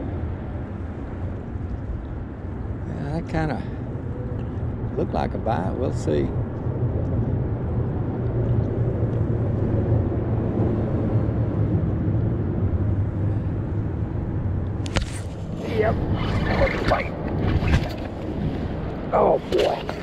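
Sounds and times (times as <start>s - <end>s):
wind and water rumble: 0.0s - 20.0s.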